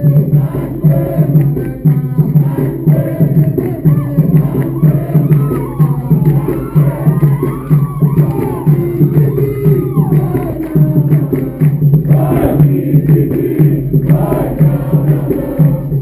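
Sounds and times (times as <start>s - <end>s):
crowd clapping along: 0.0s - 16.0s
crowd singing a chant: 0.0s - 16.0s
steady drum beat: 0.0s - 16.0s.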